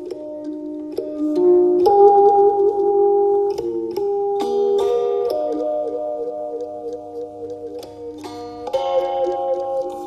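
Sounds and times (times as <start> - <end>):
gentle instrumental music: 0.0 - 10.0.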